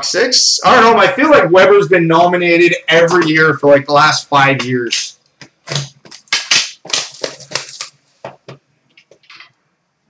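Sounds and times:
plastic wrap crinkling and tearing: 5.7 - 8.0.

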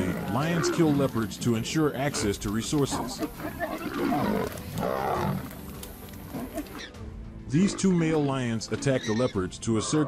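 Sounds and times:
lions growling: 0.0 - 6.9.

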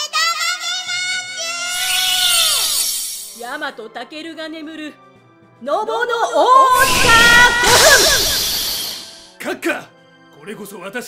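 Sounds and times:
held tone sliding down: 6.7 - 9.2
shimmering sparkle sound effect: 6.7 - 9.3.

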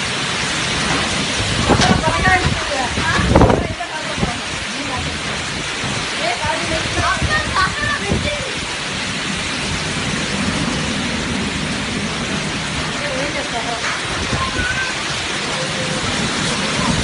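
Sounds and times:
heavy rain falling: 0.0 - 17.0.

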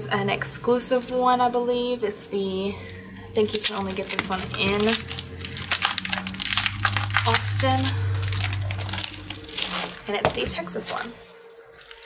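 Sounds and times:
plastic sleeve crinkling: 2.8 - 12.0.

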